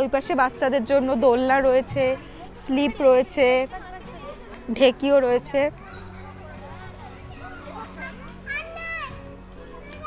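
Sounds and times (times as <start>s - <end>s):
quiet background music: 0.0s - 10.0s
children's voices at play: 1.9s - 10.0s.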